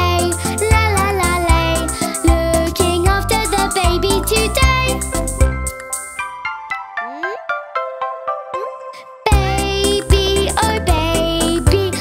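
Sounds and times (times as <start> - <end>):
plinking bell-like music: 3.4 - 9.2.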